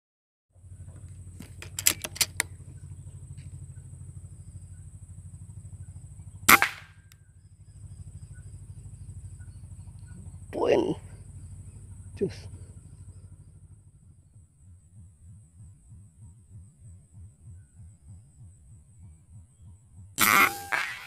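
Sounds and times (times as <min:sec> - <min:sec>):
low pulsing hum: 0:00.6 - 0:21.0
quick sharp clicks: 0:01.4 - 0:02.5
air rifle shot: 0:06.5 - 0:07.0, 0:20.2 - 0:21.0
thin high whine: 0:20.2 - 0:21.0.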